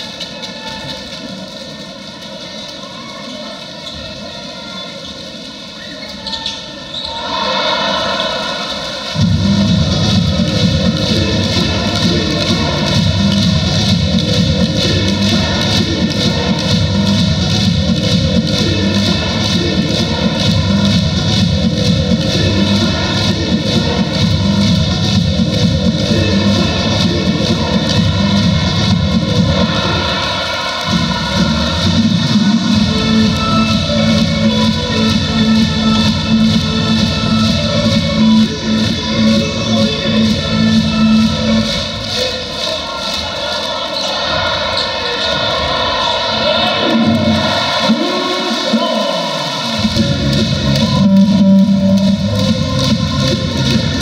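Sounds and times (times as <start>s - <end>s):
arena crowd noise: 0.0s - 54.0s
cheer music with heavy beat: 7.1s - 54.0s.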